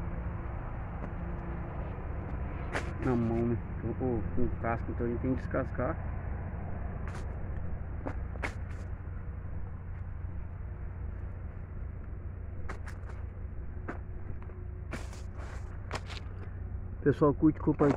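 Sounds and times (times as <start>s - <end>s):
steady low rumble: 0.0s - 17.9s.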